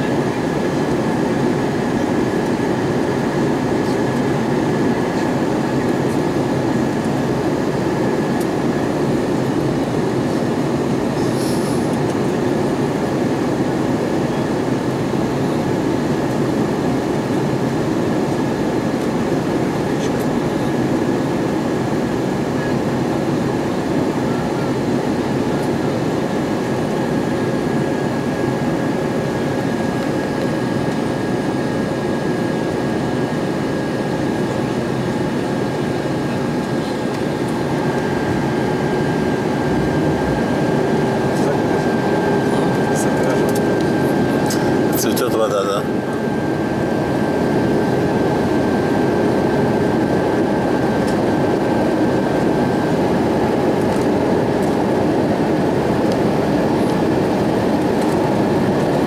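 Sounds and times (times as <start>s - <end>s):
airliner cabin rush and hum: 0.0s - 59.0s.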